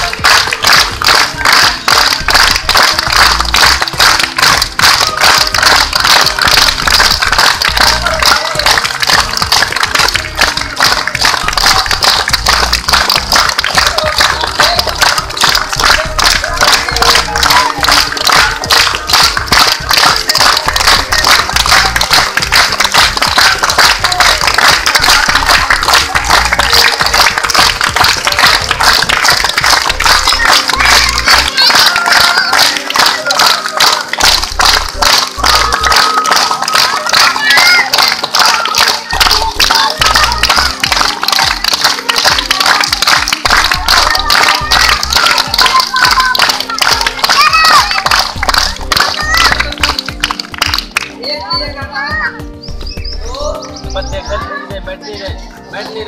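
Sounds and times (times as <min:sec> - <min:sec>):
group clapping in rhythm: 0:00.0 - 0:56.0
music over loudspeaker: 0:00.0 - 0:56.0.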